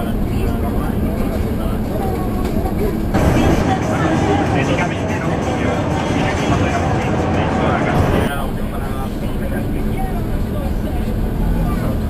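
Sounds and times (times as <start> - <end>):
bus engine and road noise: 0.0 - 12.0
faint passenger voices: 0.0 - 12.0.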